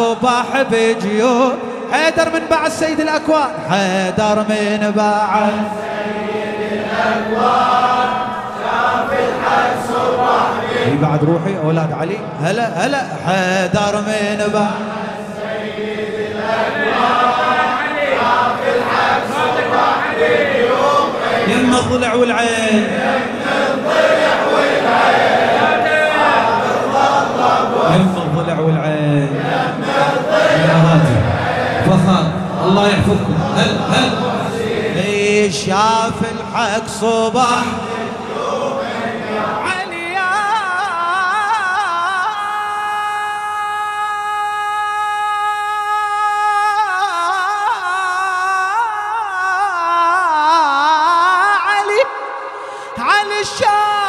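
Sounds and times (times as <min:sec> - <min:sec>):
men chanting in unison: 0:00.0 - 0:54.0
man singing a long note: 0:39.6 - 0:54.0.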